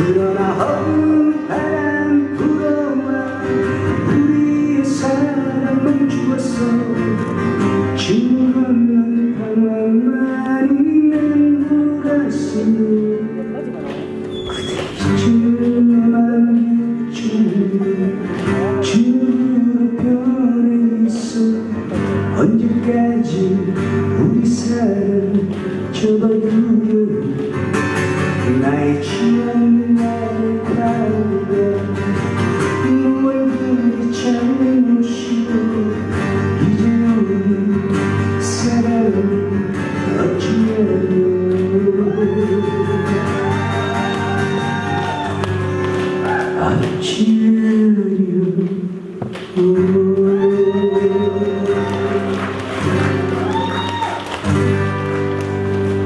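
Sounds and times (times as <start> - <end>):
man singing into microphone: 0.0 - 14.0, 14.6 - 44.7, 46.4 - 52.4
acoustic guitar strumming: 0.0 - 56.0
instrumental backing: 0.0 - 56.0.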